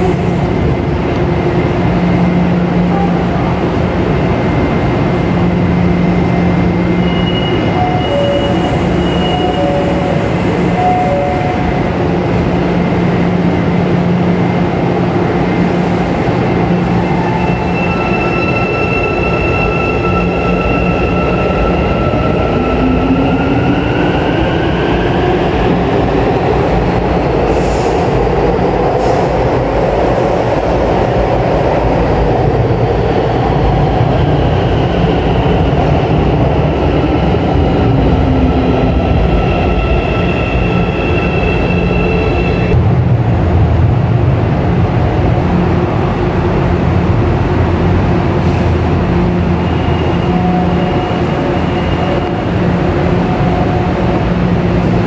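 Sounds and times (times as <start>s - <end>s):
train rumble: 0.0s - 55.0s.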